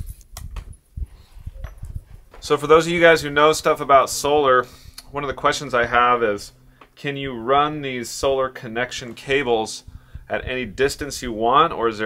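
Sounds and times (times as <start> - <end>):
light clicks and low thumps: 0.0 - 3.7, 9.0 - 11.5.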